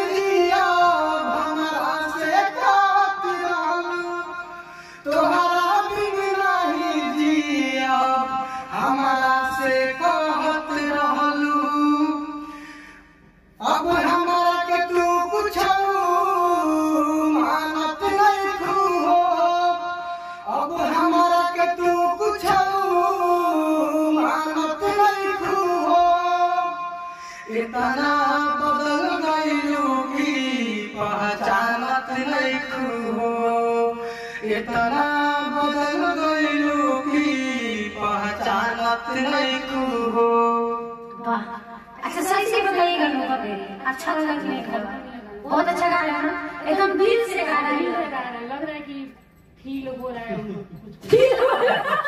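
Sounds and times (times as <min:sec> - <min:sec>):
man singing unaccompanied: 0:00.0 - 0:12.4, 0:13.5 - 0:41.4.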